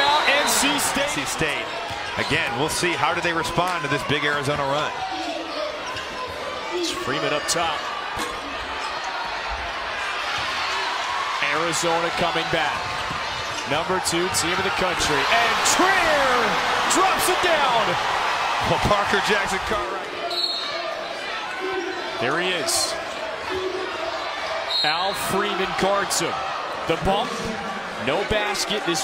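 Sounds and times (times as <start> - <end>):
arena crowd noise: 0.0 - 29.0.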